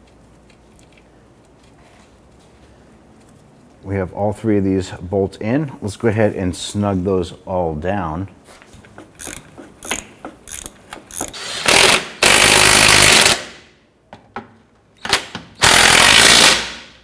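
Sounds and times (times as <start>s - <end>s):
hand ratchet clicking: 9.0s - 13.4s
cordless impact wrench bursts: 9.2s - 13.6s, 15.1s - 17.0s.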